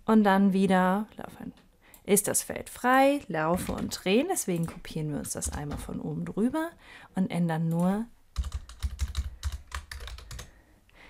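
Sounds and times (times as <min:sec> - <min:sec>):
keyboard typing: 0:02.7 - 0:06.0, 0:07.7 - 0:10.5.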